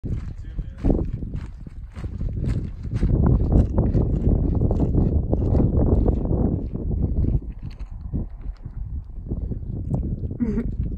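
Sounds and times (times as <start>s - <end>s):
footsteps on gravel trail: 0.0s - 10.9s
low rumble: 0.1s - 10.9s.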